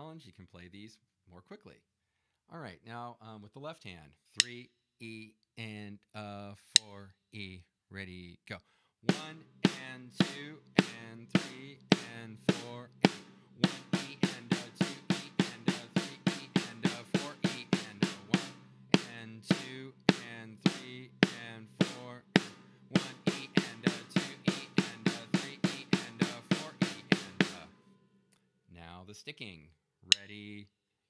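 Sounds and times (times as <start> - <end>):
drum kit strokes: 9.1 - 27.9.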